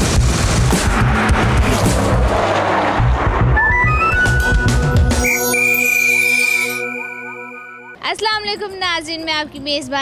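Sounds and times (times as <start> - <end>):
bass beat of theme music: 0.0 - 8.0
rushing rumbling sound effect: 0.1 - 5.3.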